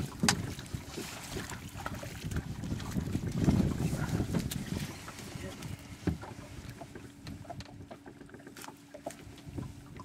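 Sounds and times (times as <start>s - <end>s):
wind buffeting microphone: 0.0s - 8.0s, 9.2s - 10.0s.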